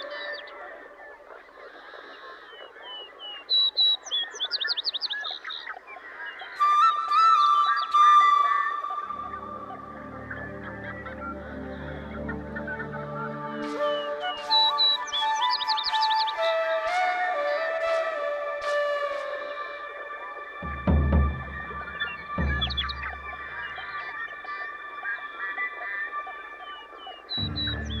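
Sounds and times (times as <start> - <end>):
birds chirping and singing: 0.0 - 28.0
low sustained music chords: 6.2 - 28.0
soft background music: 6.6 - 28.0.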